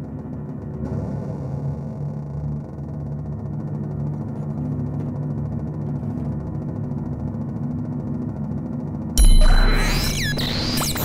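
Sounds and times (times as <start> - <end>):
steady low drone tones: 0.0 - 11.0
electronic sounds: 9.2 - 11.0
guitar: 9.2 - 11.0.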